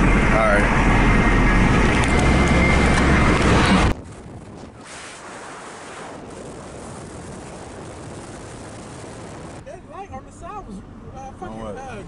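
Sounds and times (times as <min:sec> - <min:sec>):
wind noise on microphone: 0:00.0 - 0:09.6.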